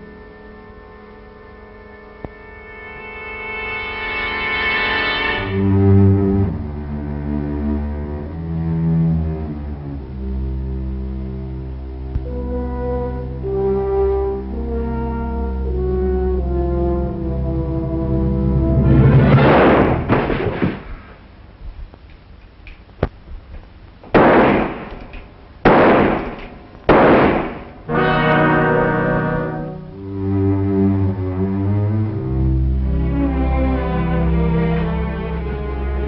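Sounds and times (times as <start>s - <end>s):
orchestral brass music: 0.0s - 20.6s, 26.9s - 36.0s
loud rushing swell: 18.5s - 21.2s
loud bangs: 18.9s - 21.3s, 24.0s - 28.3s.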